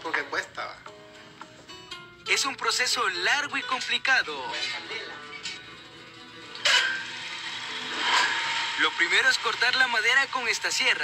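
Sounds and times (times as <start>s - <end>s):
table saw cutting wood: 6.6s - 11.0s.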